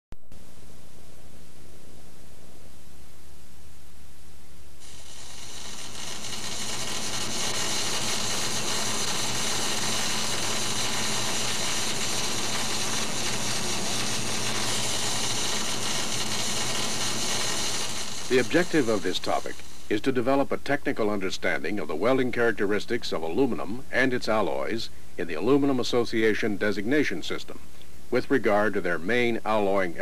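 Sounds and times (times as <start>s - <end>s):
loud steady hiss: 0.2s - 30.0s.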